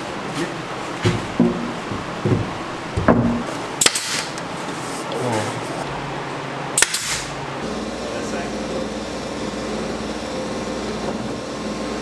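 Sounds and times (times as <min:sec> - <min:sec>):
nail gun firing: 0:03.8 - 0:04.4, 0:06.8 - 0:07.3.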